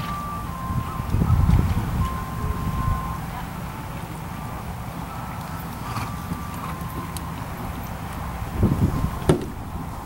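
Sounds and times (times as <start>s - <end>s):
horse hoofbeats on sand: 5.4s - 8.2s.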